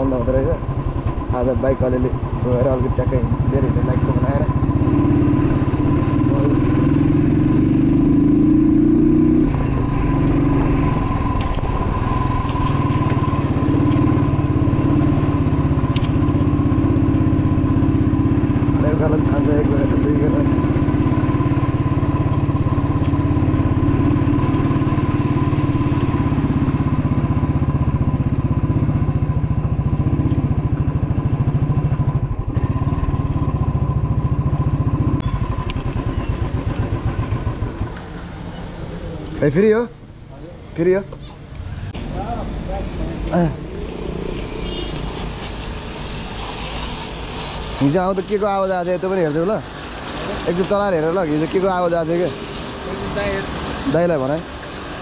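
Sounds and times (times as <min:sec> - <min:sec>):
motorcycle engine running: 0:00.0 - 0:38.3, 0:41.5 - 0:55.0.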